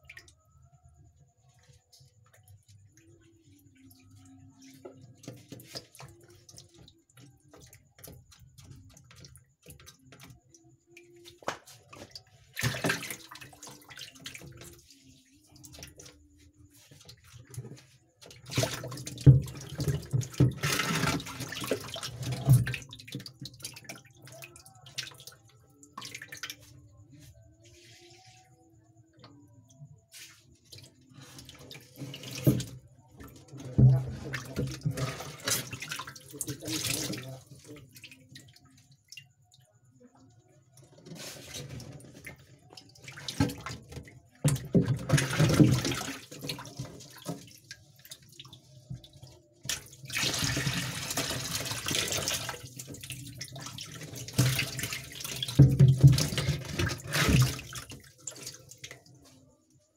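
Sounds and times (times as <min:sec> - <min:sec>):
water splashing in aquarium: 0:00.0 - 0:59.9.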